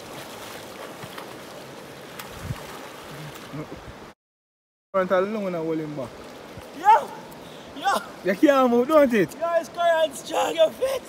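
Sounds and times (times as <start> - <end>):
swimmer splashing water: 0.0 - 3.7
river rushing: 5.5 - 11.0.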